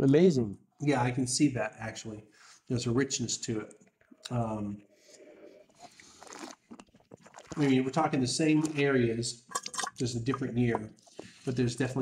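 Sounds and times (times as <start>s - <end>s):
man sipping wine: 5.0s - 8.9s
small mouth clicks: 5.7s - 7.6s.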